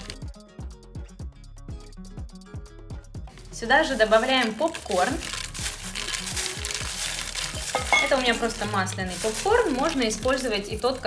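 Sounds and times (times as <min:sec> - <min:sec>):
background music with steady beat: 0:00.0 - 0:11.0
popcorn rustling and tumbling: 0:03.3 - 0:11.0.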